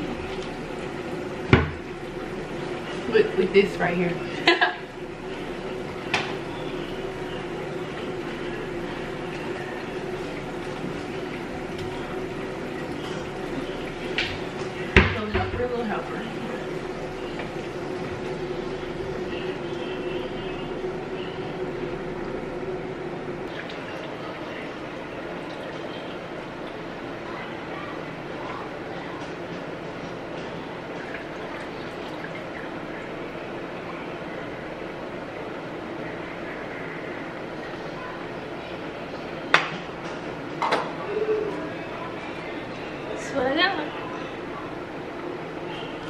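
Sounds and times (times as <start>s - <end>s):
food cooking hiss and hum: 0.0s - 46.0s.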